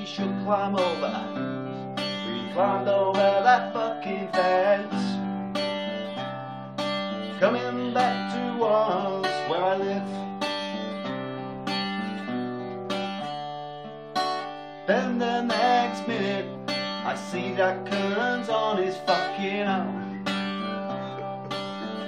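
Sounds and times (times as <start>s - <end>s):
acoustic guitar strumming chords: 0.0s - 22.0s.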